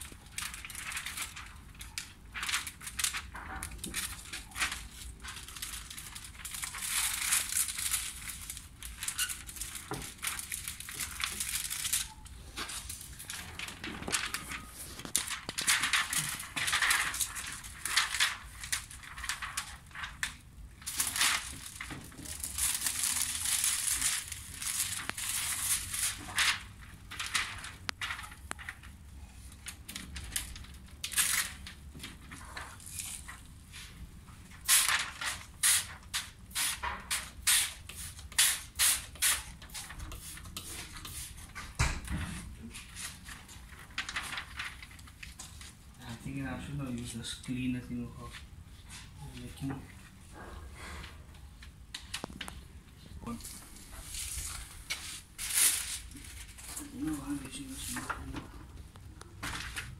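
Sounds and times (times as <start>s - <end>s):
plastic film crinkling: 0.0s - 41.8s, 42.4s - 50.2s, 51.5s - 59.9s.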